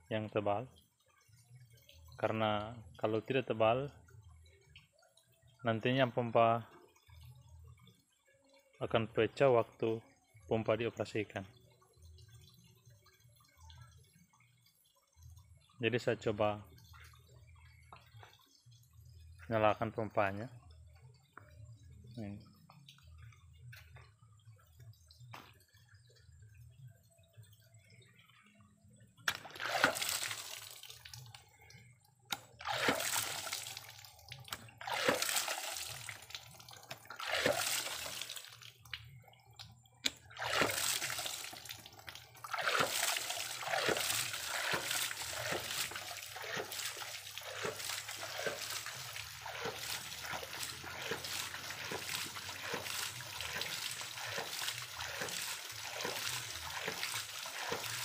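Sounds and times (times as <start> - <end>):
pump valve splashing water: 29.2 - 58.0.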